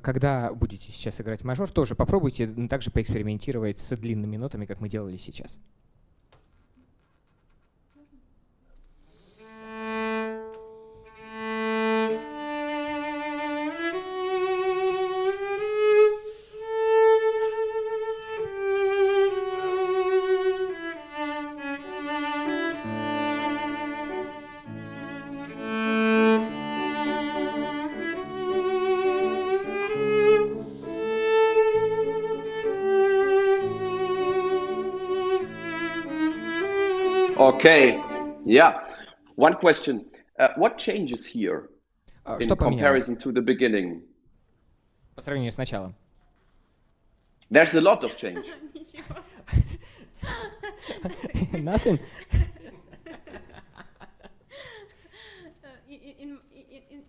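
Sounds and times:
cello melody: 8.8 - 39.8, 47.7 - 57.0.

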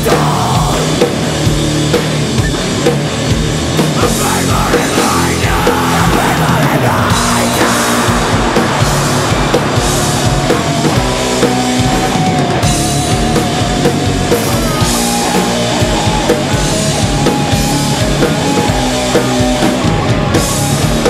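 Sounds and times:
loud electric guitars: 0.0 - 21.0
rock drum kit: 0.0 - 21.0
wavering lead guitar line: 0.0 - 21.0.

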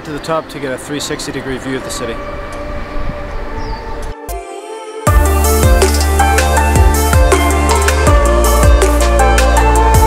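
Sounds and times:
city background rumble: 0.0 - 4.1.

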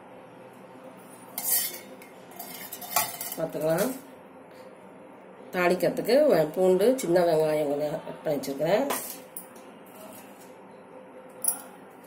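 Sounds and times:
metal cookware clanking: 1.4 - 4.0.

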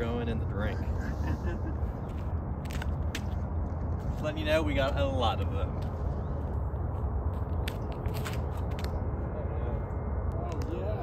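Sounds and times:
footsteps clicks and scuffs: 2.0 - 5.0, 5.7 - 9.0.

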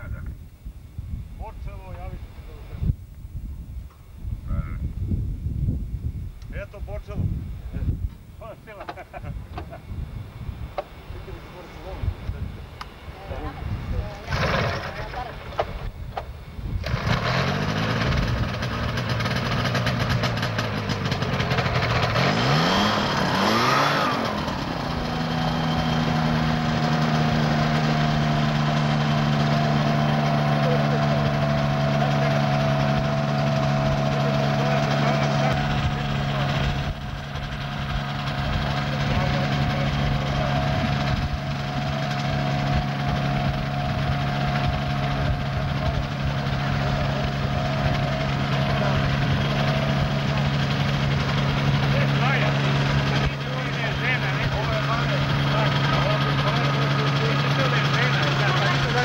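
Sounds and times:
trike engine revving and idling: 13.2 - 59.0.

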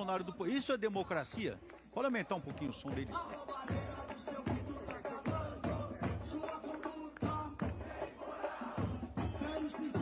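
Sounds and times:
crowd singing and chanting: 0.0 - 10.0
music with drum beat: 0.9 - 10.0.

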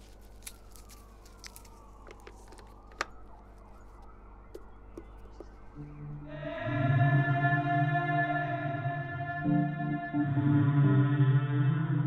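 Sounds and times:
synthesizer chord: 5.8 - 12.0.

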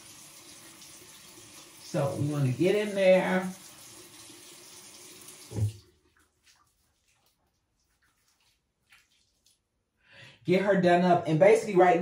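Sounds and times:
faint splashes of face washing: 3.5 - 10.0
tap running into sink: 5.4 - 5.9.

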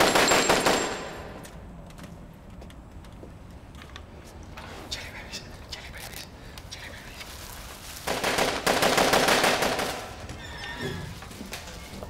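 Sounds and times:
rapid automatic gunfire: 0.0 - 1.2, 8.1 - 10.2.

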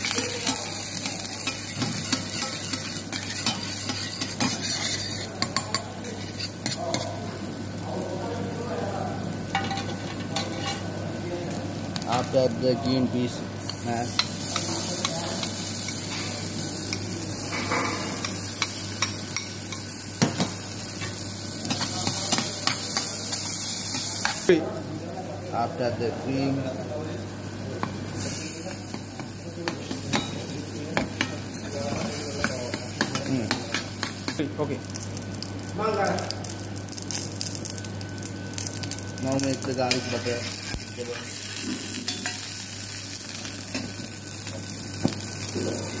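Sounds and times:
metal spoon scraping a pan: 0.0 - 7.1
butter sizzling in a pan: 0.0 - 46.0.

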